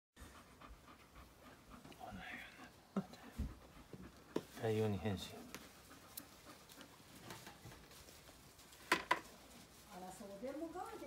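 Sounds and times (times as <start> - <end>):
dog panting: 0.2 - 8.6.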